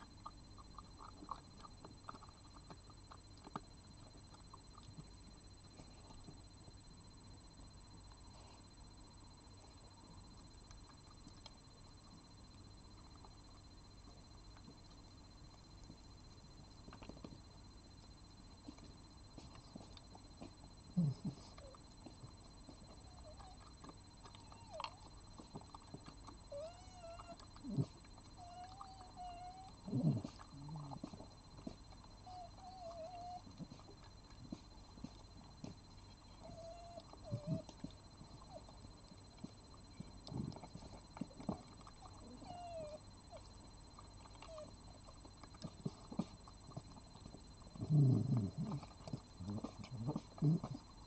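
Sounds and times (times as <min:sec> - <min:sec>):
fox crunching dry kibble: 0:00.0 - 0:06.2, 0:21.3 - 0:32.5
fox whining calls: 0:26.5 - 0:31.0, 0:42.0 - 0:43.0.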